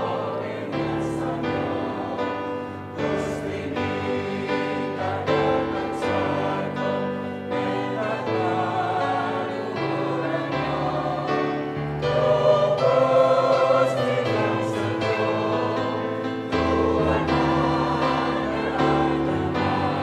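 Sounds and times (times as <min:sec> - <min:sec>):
mixed choir singing a hymn: 0:00.0 - 0:20.0.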